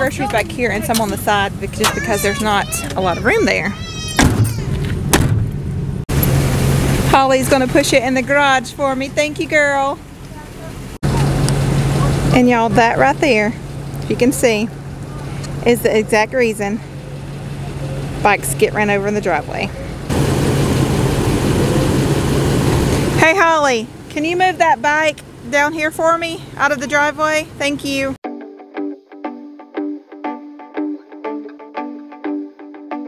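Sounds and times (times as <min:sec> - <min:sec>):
van engine idling: 0:00.0 - 0:27.6
van doors shutting with thuds: 0:03.8 - 0:05.9.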